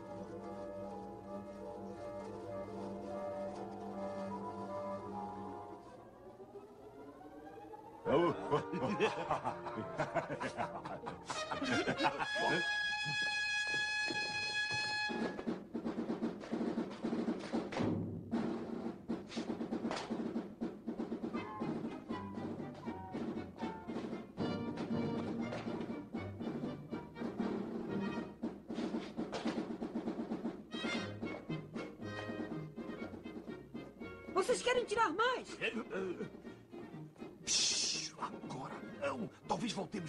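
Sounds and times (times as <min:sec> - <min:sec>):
orchestral music with timpani and brass: 0:00.0 - 0:05.9, 0:08.0 - 0:40.0.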